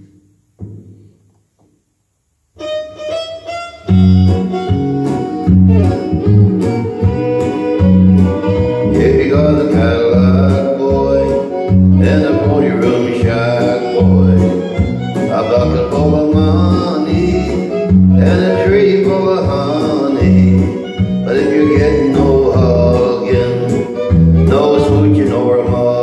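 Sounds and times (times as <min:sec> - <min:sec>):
guitar: 0:02.5 - 0:26.0
fiddle: 0:02.6 - 0:26.0
steady beat: 0:03.9 - 0:18.8
bass line: 0:03.9 - 0:26.0.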